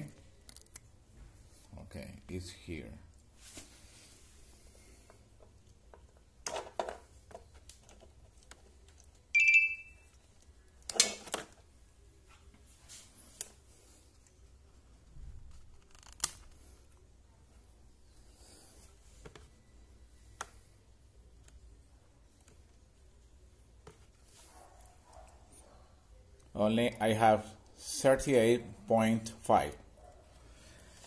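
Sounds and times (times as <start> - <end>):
short electronic beep: 9.4 - 10.0.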